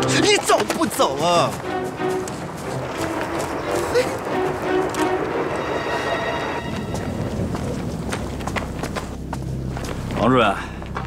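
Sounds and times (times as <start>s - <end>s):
cart rolling and clattering: 0.0s - 9.2s
background score music: 0.0s - 11.0s
marching footsteps on dirt: 0.0s - 11.0s.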